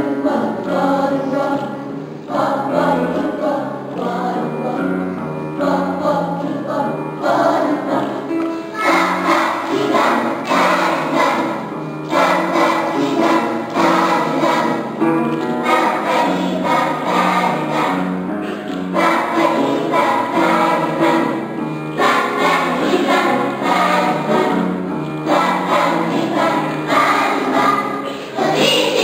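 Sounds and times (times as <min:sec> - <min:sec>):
children's choir singing: 0:00.0 - 0:29.0.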